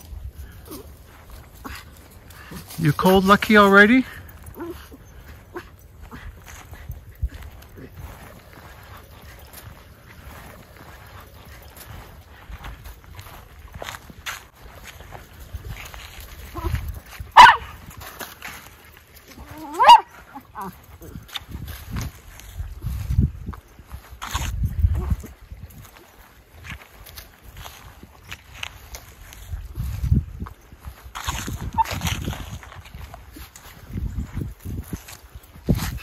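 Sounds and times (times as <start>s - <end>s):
footsteps on frozen ground: 0.0s - 36.0s
dog barking: 17.4s - 17.8s, 19.5s - 20.7s
low wind rumble: 21.0s - 25.9s.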